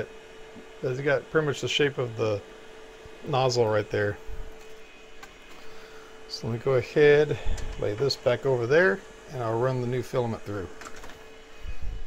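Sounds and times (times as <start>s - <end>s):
printer fans humming: 0.0s - 12.0s.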